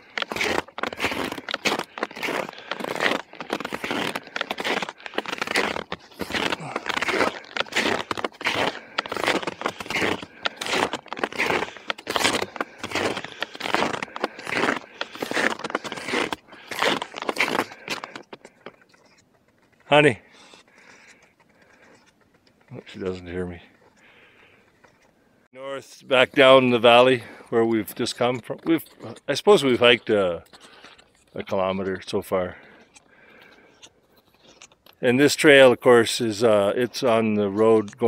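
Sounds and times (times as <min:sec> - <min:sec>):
footsteps crunching in snow: 0:00.0 - 0:25.0.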